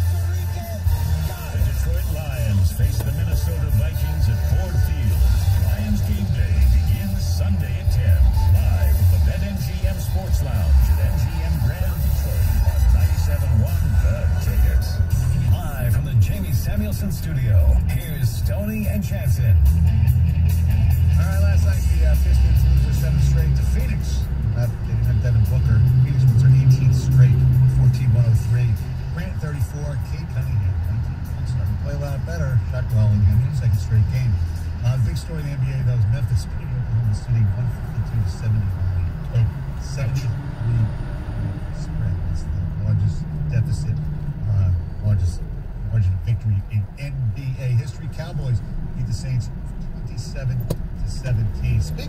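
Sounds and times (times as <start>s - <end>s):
car radio voices: 0.0s - 52.0s
muffled bass-heavy music: 0.0s - 52.0s.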